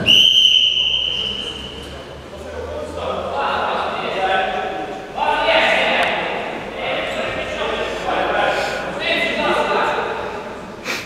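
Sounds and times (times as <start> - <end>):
players' voices echoing: 0.0 - 10.8.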